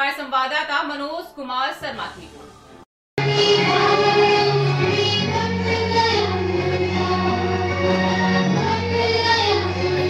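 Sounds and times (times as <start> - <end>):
sustained instrumental accompaniment: 2.7 - 10.0
group of voices singing: 3.2 - 10.0.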